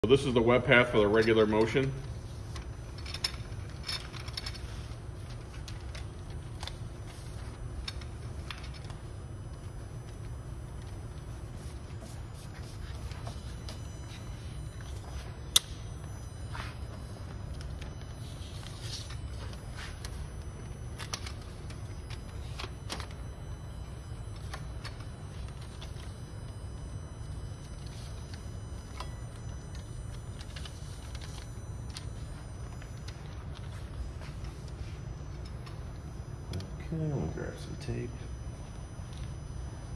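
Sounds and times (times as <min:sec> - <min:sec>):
steady low hum: 0:00.0 - 0:39.9
small clicks and crinkles: 0:01.0 - 0:39.9.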